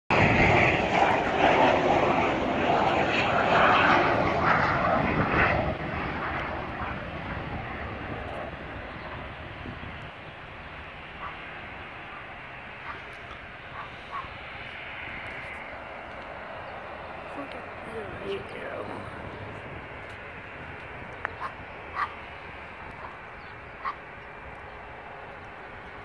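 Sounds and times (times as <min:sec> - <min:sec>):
airplane flying over: 0:00.1 - 0:26.0.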